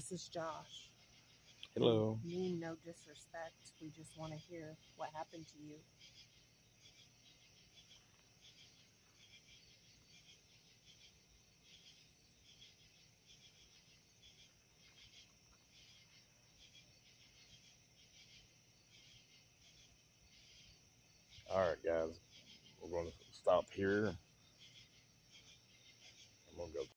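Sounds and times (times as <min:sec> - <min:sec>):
crickets chirping: 0:00.0 - 0:26.9.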